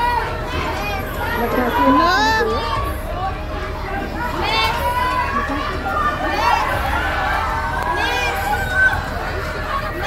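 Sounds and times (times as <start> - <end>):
children shouting and screaming: 0.0 - 10.0
din of children's voices: 0.0 - 10.0.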